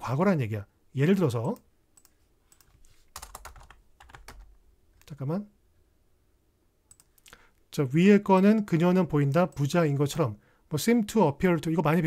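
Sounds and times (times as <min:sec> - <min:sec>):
typing on computer keyboard: 0:01.5 - 0:04.6.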